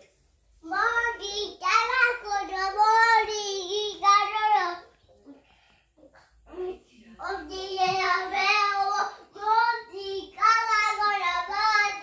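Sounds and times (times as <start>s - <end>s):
child singing: 0.6s - 4.9s, 7.2s - 12.0s.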